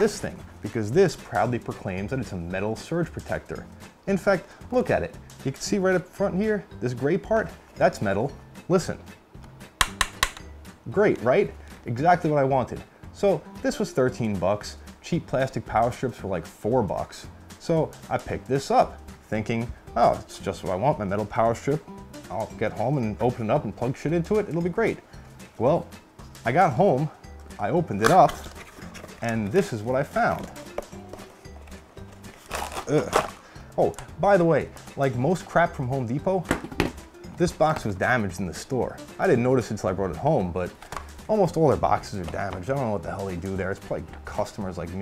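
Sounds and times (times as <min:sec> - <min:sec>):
finger taps on sheet metal: 0:09.8 - 0:10.5
cardboard box handling: 0:28.0 - 0:33.4.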